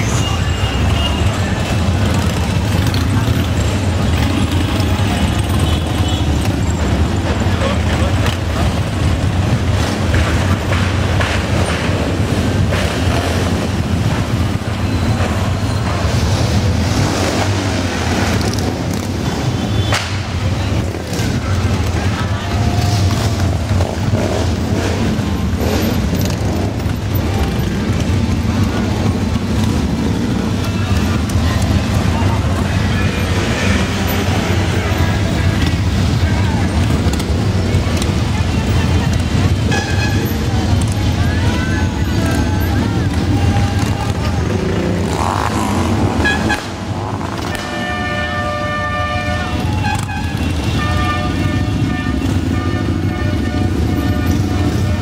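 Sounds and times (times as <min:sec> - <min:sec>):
voices: 0:00.0 - 0:55.0
motorcycles rumbling past: 0:40.4 - 0:47.7.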